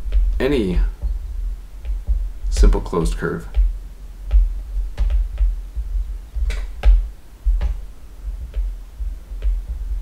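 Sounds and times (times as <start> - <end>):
stylus tapping on writing tablet: 1.8 - 2.8, 3.5 - 7.8, 8.4 - 9.8.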